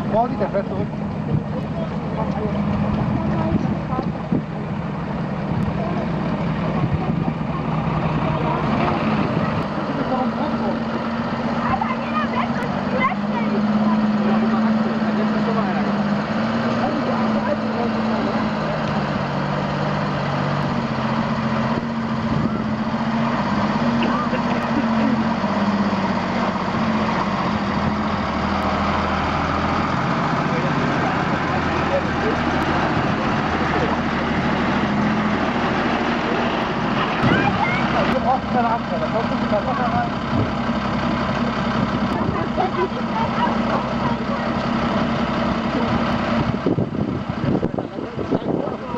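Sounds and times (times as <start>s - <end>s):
truck engine running at low revs: 0.0s - 48.9s.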